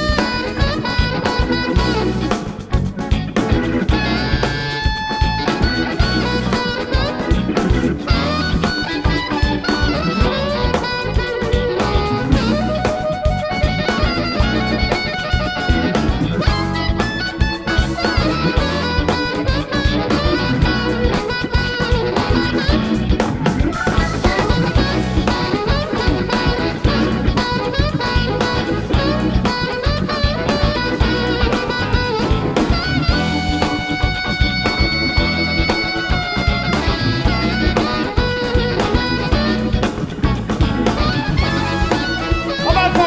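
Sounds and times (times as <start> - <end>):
blues band playing: 0.0 - 43.0
electric guitar lead: 0.0 - 43.0.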